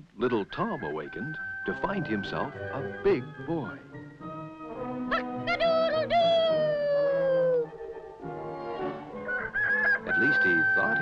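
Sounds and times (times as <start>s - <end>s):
cartoon rooster crow: 9.3s - 11.0s.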